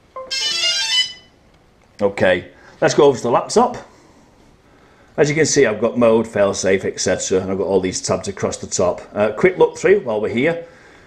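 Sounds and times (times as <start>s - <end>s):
drone start-up beeps: 0.1s - 1.3s.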